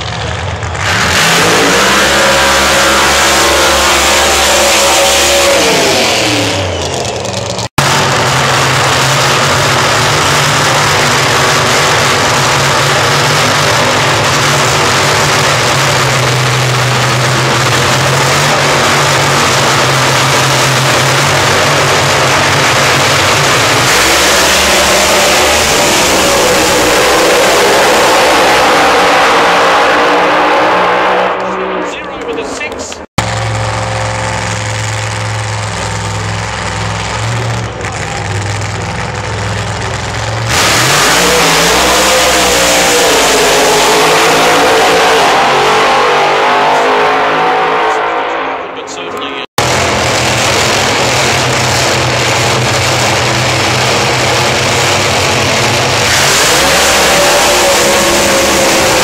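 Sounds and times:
drag racing engines revving: 0.0 - 59.0.

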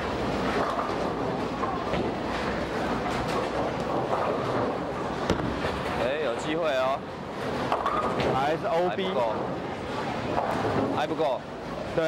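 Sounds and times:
bowling ball knock and rolling: 0.1 - 6.0, 7.4 - 8.4.

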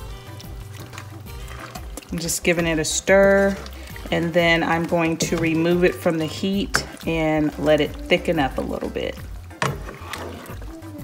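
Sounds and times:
background music: 0.0 - 11.0
spoon stirring pasta in skillet: 0.0 - 11.0.

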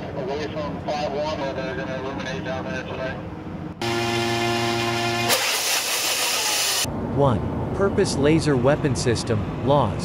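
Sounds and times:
small drone engine running: 3.8 - 6.9
loud rush of launcher: 4.2 - 6.9.

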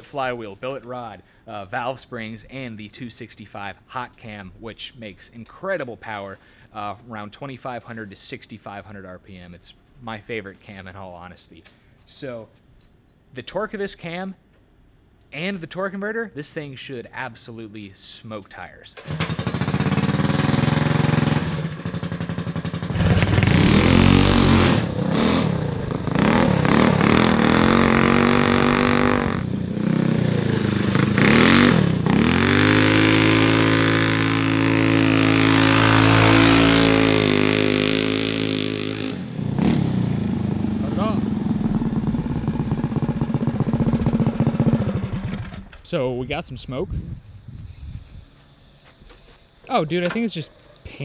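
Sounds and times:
go-kart engine revving: 19.0 - 45.8.

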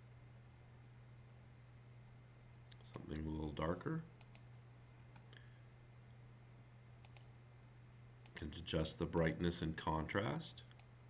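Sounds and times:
steady low hum: 0.0 - 11.0
computer mouse clicks: 4.2 - 4.5, 7.0 - 7.3.

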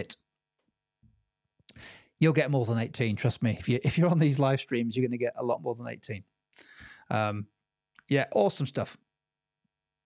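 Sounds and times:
person breathing in: 1.7 - 2.2, 6.6 - 7.1.

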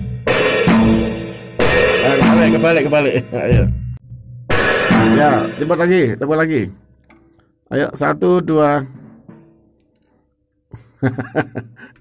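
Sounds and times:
drum kit strike with cymbals: 0.0 - 6.1.

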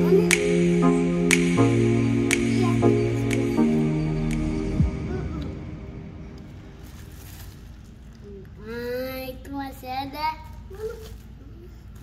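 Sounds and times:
child singing held notes: 2.3 - 5.8.

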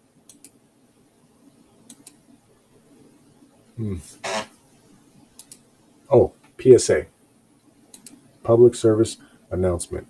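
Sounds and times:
faint clicks: 0.3 - 0.6, 1.8 - 2.2, 5.3 - 5.7, 7.9 - 8.2
man humming hmm: 3.8 - 4.2.

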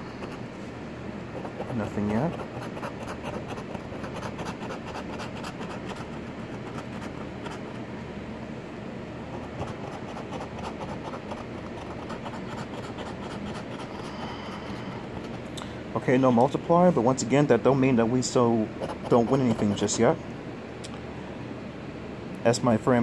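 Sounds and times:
coin scratching lottery ticket: 1.4 - 7.7, 9.3 - 14.2, 18.7 - 20.0.

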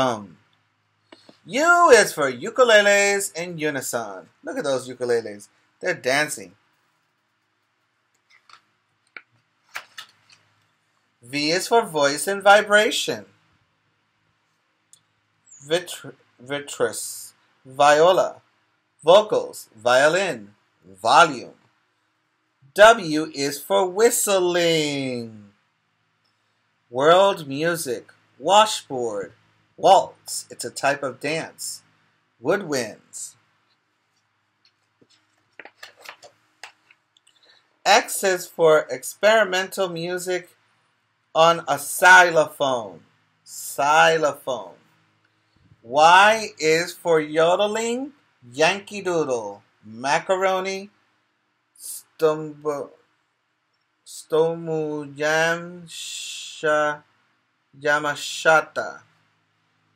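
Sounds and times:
book pages turning: 8.2 - 10.5, 34.8 - 37.0
paper page rustling: 34.8 - 37.0.

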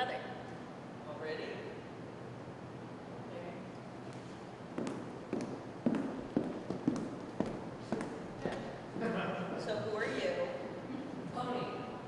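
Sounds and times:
footsteps on wooden stage: 4.2 - 9.2.

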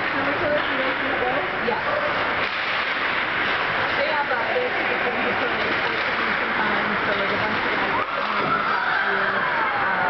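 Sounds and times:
ice rink din: 0.0 - 9.4.

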